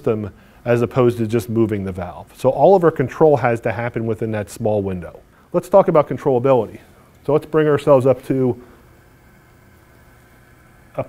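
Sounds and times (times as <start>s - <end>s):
circulator pump running: 5.4s - 11.0s.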